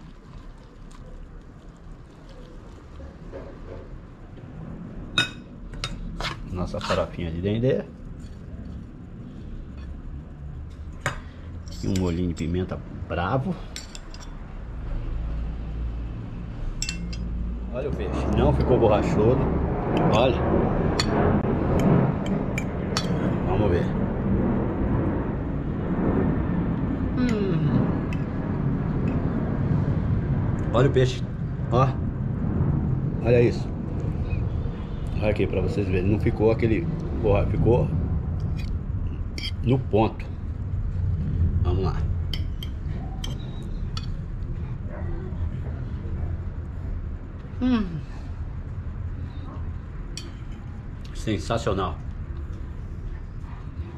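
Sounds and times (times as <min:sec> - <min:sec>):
low rumble: 0:02.8 - 0:11.7, 0:14.2 - 0:53.9.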